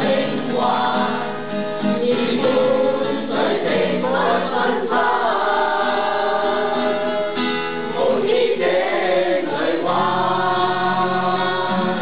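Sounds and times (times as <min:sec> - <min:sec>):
acoustic guitar: 0:00.0 - 0:12.0
men and women singing together: 0:00.0 - 0:12.0.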